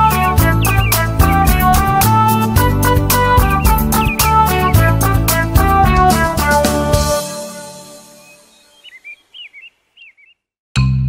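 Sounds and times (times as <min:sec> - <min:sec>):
children's song chord: 0:00.0 - 0:08.5
high bird chirps: 0:00.3 - 0:05.0, 0:08.2 - 0:10.5.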